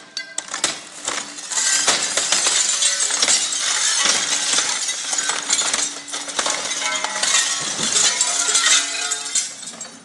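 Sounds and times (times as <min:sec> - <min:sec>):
brick rubble clattering: 0:00.2 - 0:10.0.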